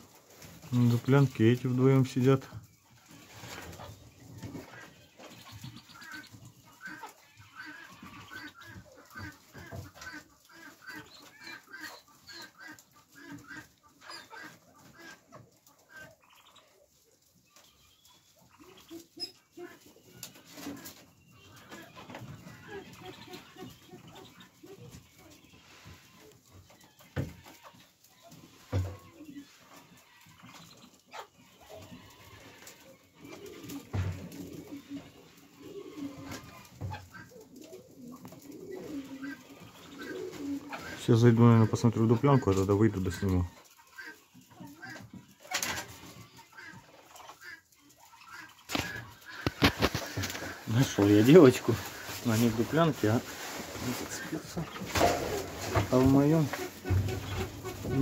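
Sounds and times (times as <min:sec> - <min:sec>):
ducks calling softly: 0:00.0 - 0:58.0.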